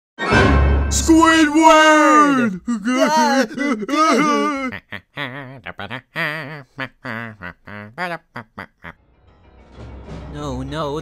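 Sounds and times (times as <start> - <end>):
man's cartoon voice singing: 1.0 - 6.9.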